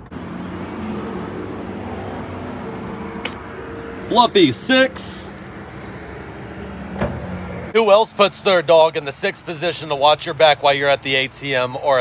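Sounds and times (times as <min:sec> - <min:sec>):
low engine hum: 0:00.0 - 0:07.8
passing road traffic: 0:00.0 - 0:12.0.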